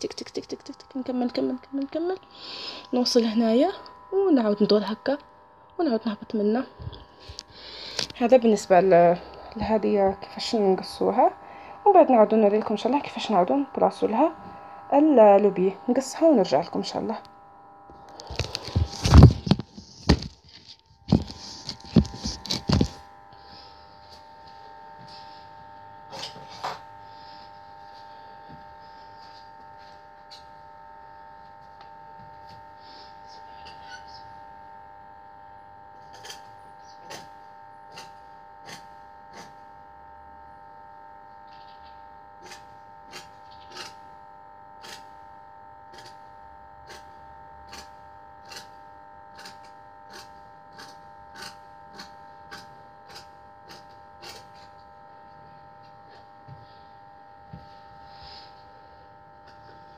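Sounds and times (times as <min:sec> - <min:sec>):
electrical hum: 0:00.0 - 0:59.9.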